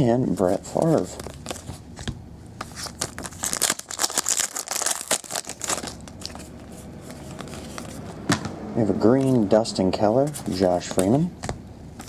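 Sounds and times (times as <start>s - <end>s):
trading cards flipping: 0.7s - 8.2s.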